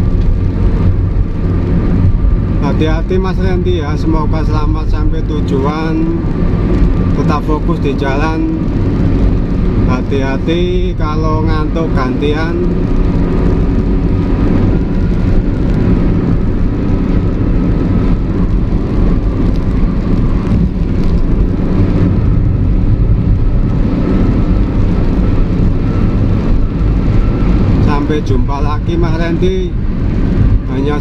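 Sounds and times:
engine hum: 0.0s - 31.0s
road rumble: 0.0s - 31.0s.

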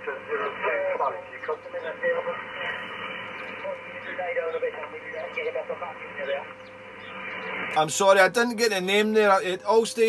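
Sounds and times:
faint radio voice: 0.0s - 6.4s
radio band noise hiss: 0.0s - 10.0s.

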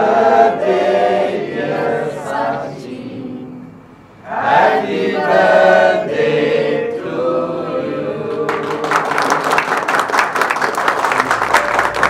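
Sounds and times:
group singing birthday song: 0.0s - 9.4s.

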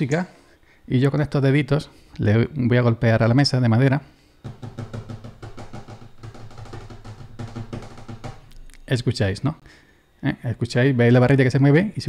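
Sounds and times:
fingers drumming on wooden table: 4.4s - 8.9s.

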